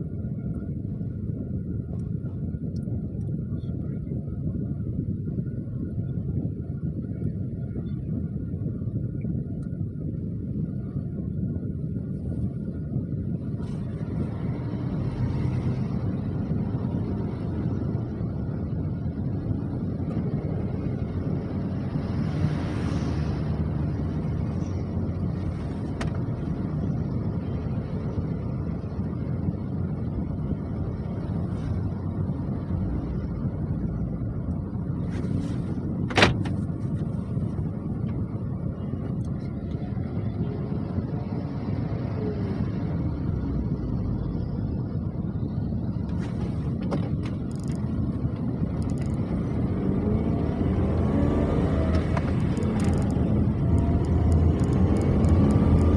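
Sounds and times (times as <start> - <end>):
idling engines and street traffic: 0.0 - 55.9.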